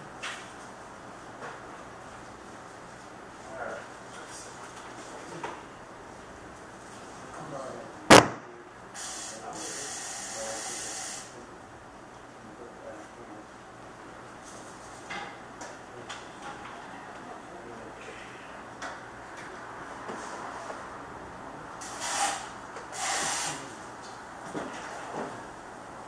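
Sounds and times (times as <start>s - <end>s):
sharp click: 8.1s - 8.5s.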